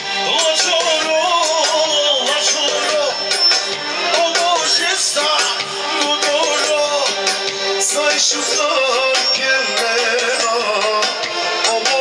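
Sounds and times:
loud dance music: 0.0 - 12.0
person singing ornamented melody: 0.2 - 12.0.

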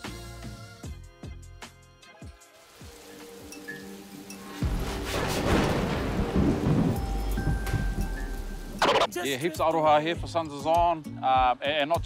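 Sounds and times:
steady rain: 2.2 - 8.9
rolling thunder rumble: 4.7 - 8.8.

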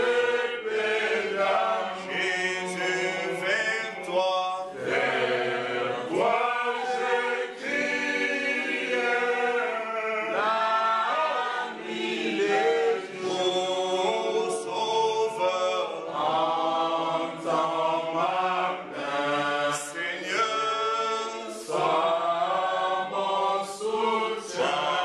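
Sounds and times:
voices singing a slow hymn: 0.0 - 25.0.

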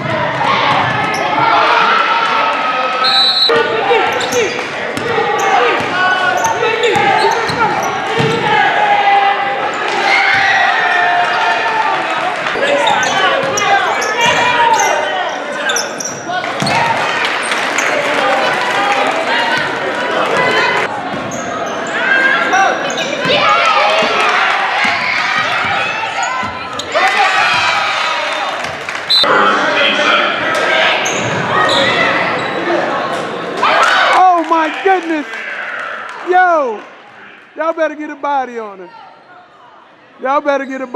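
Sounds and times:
sneaker squeaks: 3.0 - 5.7, 6.3 - 8.5, 12.7 - 16.8, 21.1 - 22.0, 31.0 - 32.7.

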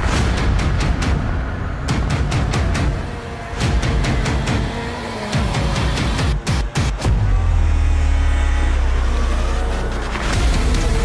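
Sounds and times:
dramatic music with drum hits: 0.0 - 11.0.

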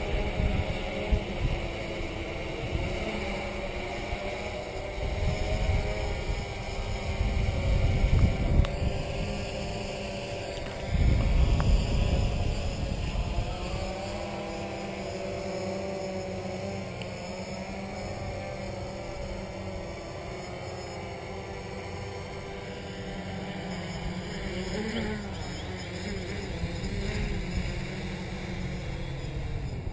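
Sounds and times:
wind buffeting microphone: 0.0 - 14.8
drone propellers humming: 0.0 - 29.9.

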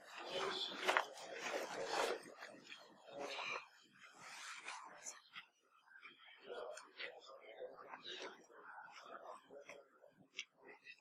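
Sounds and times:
faint murmured speech: 0.0 - 11.0.

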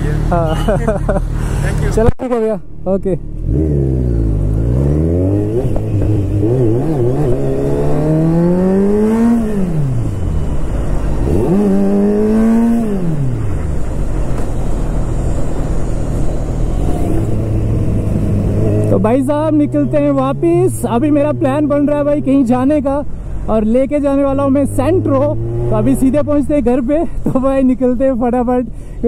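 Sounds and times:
motorcycle engine accelerating: 3.2 - 22.5, 24.2 - 26.8.

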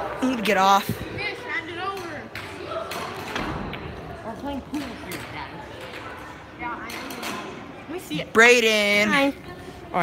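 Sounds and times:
boys talking in echoing room: 0.0 - 10.0.

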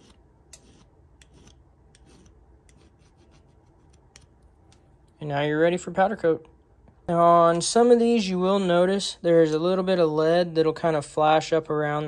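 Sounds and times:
file scraping metal: 0.0 - 4.3.

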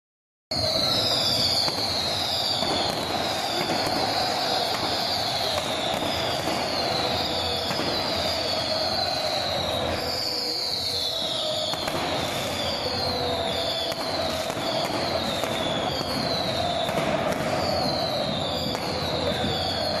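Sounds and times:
crowd noise: 0.5 - 20.0
whistling fireworks: 0.5 - 20.0.

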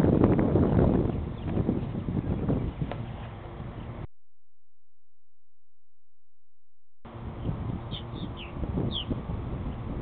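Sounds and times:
wind rumble on microphone: 0.0 - 4.1, 7.1 - 10.0
birds chirping: 7.1 - 9.9.

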